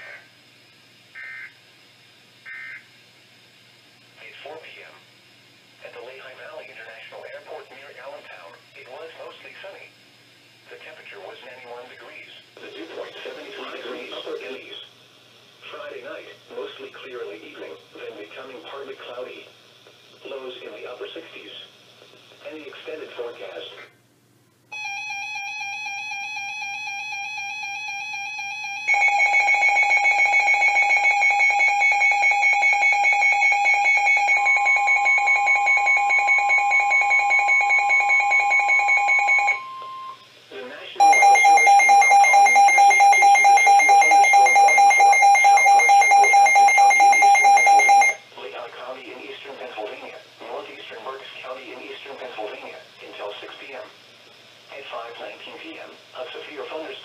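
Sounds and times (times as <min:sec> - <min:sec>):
faint broadcast voice: 0:04.2 - 0:05.0, 0:05.8 - 0:09.9, 0:10.7 - 0:14.9, 0:15.6 - 0:24.0, 0:40.5 - 0:41.2, 0:48.3 - 0:54.0, 0:54.7 - 0:57.0
electronic alarm beeping: 0:24.7 - 0:40.2, 0:41.0 - 0:48.2
weather radio warning tone: 0:41.0 - 0:48.2.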